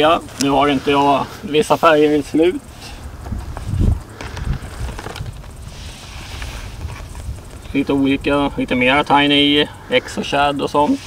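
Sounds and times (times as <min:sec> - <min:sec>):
plastic boxes rumbling and thumping: 0:03.1 - 0:05.7.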